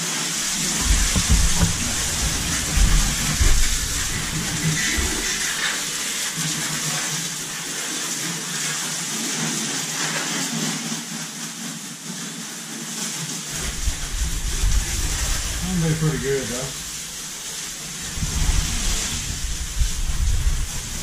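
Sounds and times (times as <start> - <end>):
hose spraying water: 0.0 - 21.0
low bumps: 0.3 - 7.5, 13.5 - 21.0.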